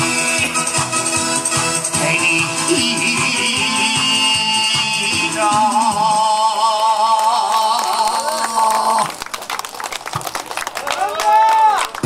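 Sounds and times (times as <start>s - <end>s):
backing music: 0.0s - 7.2s
scattered clapping: 6.8s - 12.0s.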